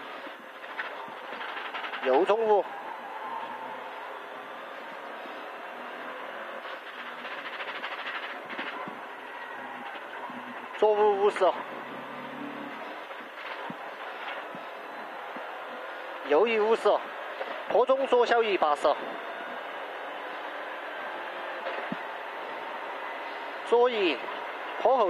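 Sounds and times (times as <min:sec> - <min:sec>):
rally car engine in cabin: 0:00.0 - 0:25.0.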